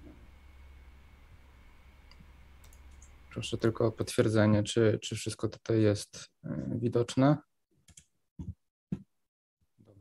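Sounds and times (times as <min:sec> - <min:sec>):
low steady hum: 0:00.0 - 0:05.7
faint mouse clicks: 0:02.1 - 0:03.1.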